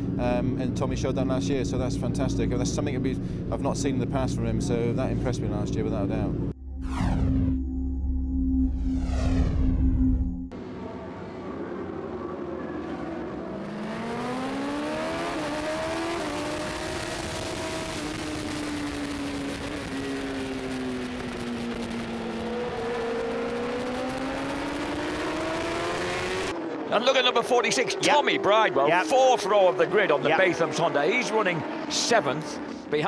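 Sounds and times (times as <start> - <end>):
wind rushing: 6.6 - 10.6
motorbike engines revving: 10.6 - 33.0.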